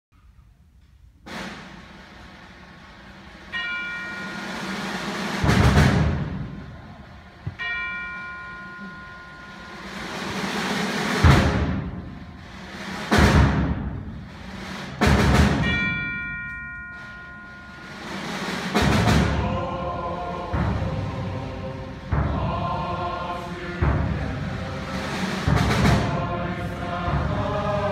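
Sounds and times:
accented timpani hits: 0:01.2 - 0:07.6, 0:08.6 - 0:16.1, 0:17.0 - 0:27.9
percussion rolls: 0:01.2 - 0:27.9
symphonic band playing: 0:01.3 - 0:16.1, 0:16.9 - 0:27.9
bell-like struck tones: 0:03.5 - 0:05.3, 0:07.5 - 0:10.6, 0:15.6 - 0:18.4.

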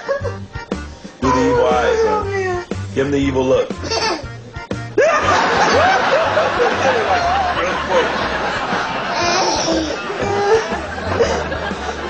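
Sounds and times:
baby laughing: 0:03.8 - 0:04.3, 0:05.0 - 0:11.7.

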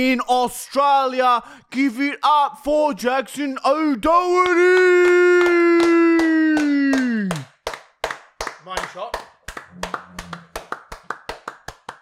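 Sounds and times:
people clapping hands fast: 0:04.4 - 0:12.0.

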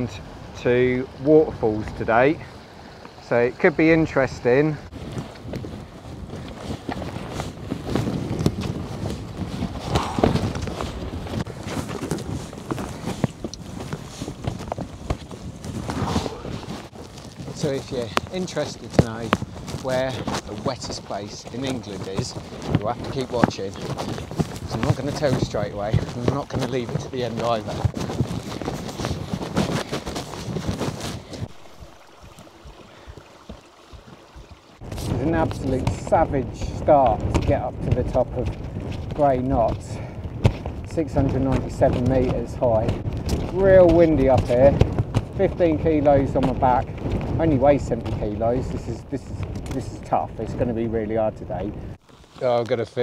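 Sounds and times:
rustle: 0:00.0 - 0:53.0
wind on microphone: 0:00.0 - 0:53.0
boots scuffing on rock and stones: 0:11.5 - 0:33.8.

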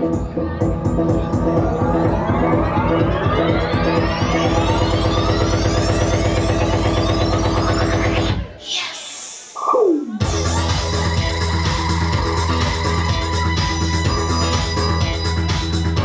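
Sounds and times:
electronic synthesizer music: 0:00.0 - 0:08.5, 0:09.6 - 0:16.0.

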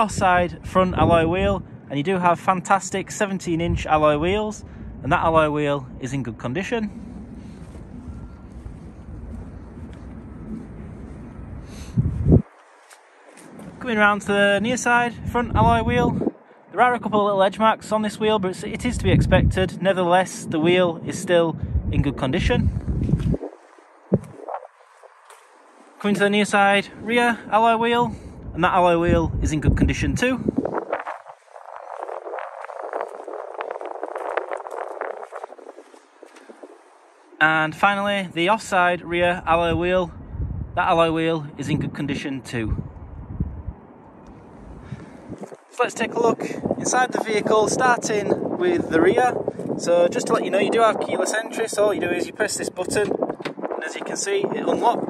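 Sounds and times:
faint outdoor background noise: 0:00.0 - 0:55.0
wind rumble on microphone: 0:00.0 - 0:55.0
footsteps crunching on tarmac: 0:07.1 - 0:13.8, 0:22.7 - 0:26.2, 0:30.5 - 0:37.3.

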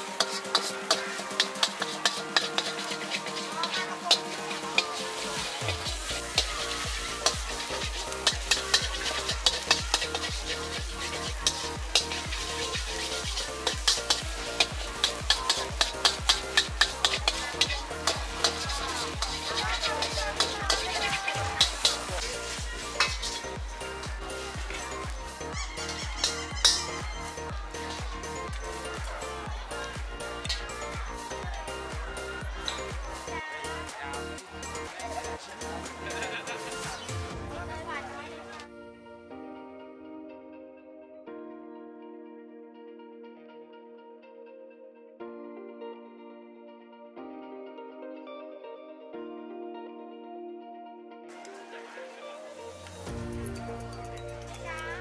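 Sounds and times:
frying sizzle: 0:00.0 - 0:33.3
background music with steady beat: 0:00.0 - 0:41.8, 0:51.3 - 0:55.0
metal spatula scraping a wok: 0:00.2 - 0:23.6, 0:25.8 - 0:27.0.

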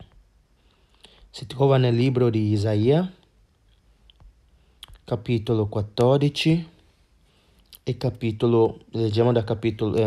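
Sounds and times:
person speaking: 0:01.0 - 0:03.4, 0:04.2 - 0:06.9, 0:07.7 - 0:10.0.

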